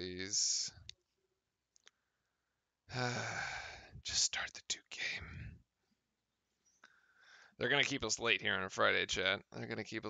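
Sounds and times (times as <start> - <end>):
man sighing: 2.9 - 4.0.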